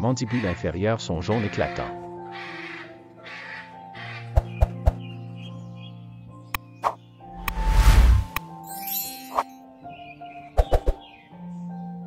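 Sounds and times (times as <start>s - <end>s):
macaw squawking: 0.0s - 4.6s
soft background music: 0.0s - 12.0s.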